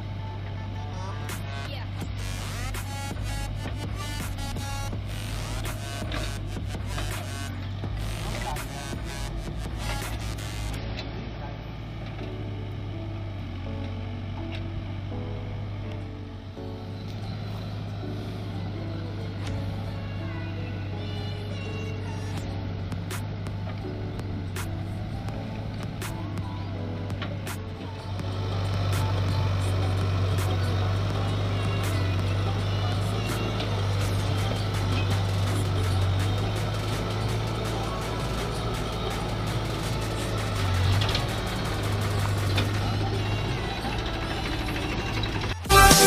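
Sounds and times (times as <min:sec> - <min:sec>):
background music: 0:00.0 - 0:46.0
diesel engines running: 0:00.0 - 0:46.0
loud electronic music: 0:01.3 - 0:10.8, 0:28.9 - 0:43.9, 0:45.6 - 0:46.0.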